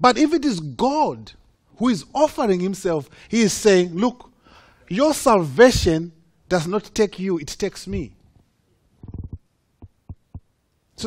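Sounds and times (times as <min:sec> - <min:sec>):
mouth click: 0:09.0 - 0:10.4
man's low throaty sound: 0:09.0 - 0:10.5.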